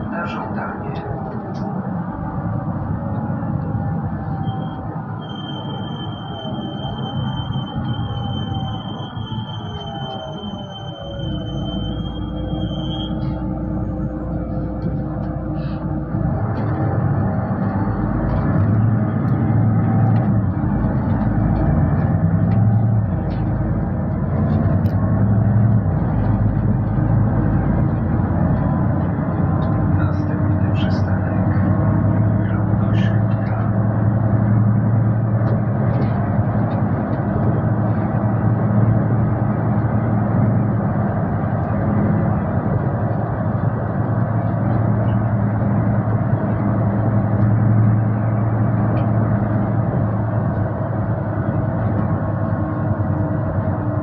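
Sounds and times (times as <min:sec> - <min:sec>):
bus engine drone: 0:00.0 - 0:54.0
road noise: 0:00.0 - 0:54.0.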